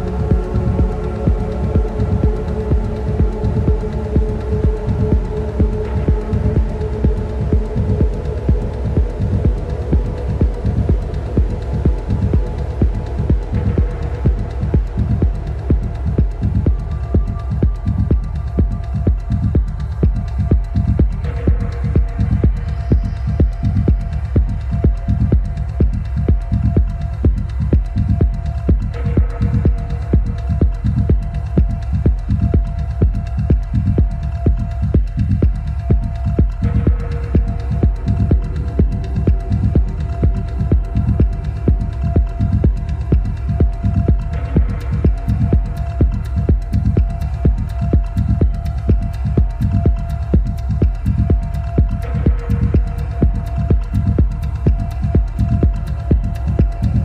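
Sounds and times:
heavy sub-bass: 0.0s - 57.0s
techno kick drum: 0.0s - 57.0s.

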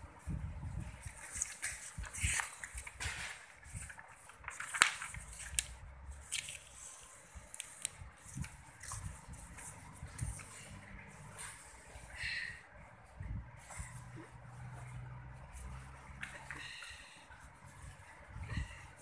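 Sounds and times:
paper rustling: 0.8s - 12.0s.

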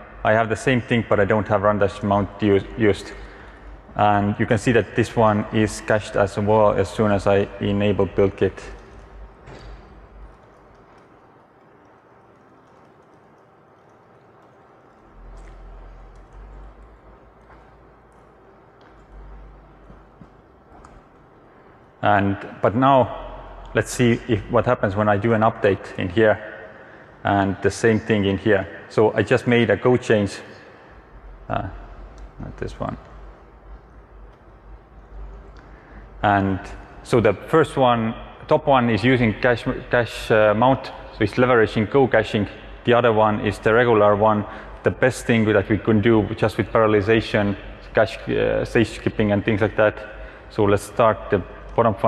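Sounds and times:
low room noise: 0.0s - 52.0s
steady low hum: 0.0s - 52.0s
laptop keyboard typing: 8.8s - 21.1s.

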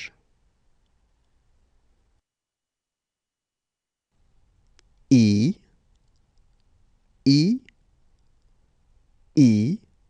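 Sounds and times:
man saying a letter: 5.1s - 5.6s.

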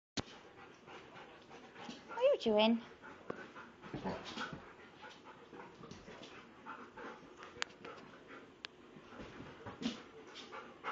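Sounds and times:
dogs panting and scuffling: 0.2s - 10.9s.

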